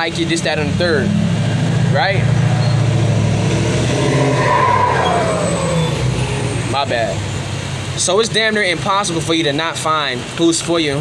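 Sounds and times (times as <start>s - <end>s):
vehicle passing with engine rumble: 0.0s - 11.0s.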